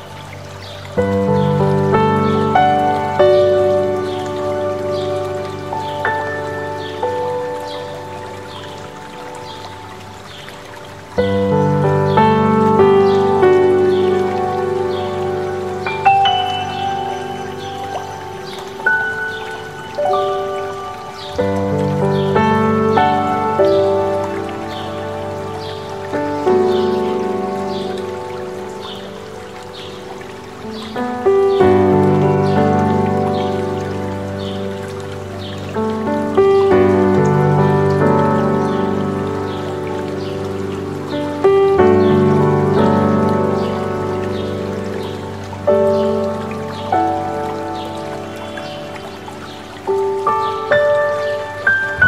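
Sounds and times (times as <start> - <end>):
bird chirping: 0.0 - 32.6
slow soft piano music: 0.0 - 52.0
stream rushing: 0.0 - 52.0.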